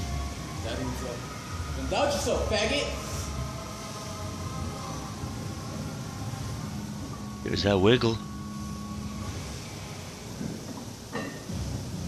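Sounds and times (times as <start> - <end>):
gym room rumble: 0.0 - 12.0
faint hum: 2.4 - 12.0.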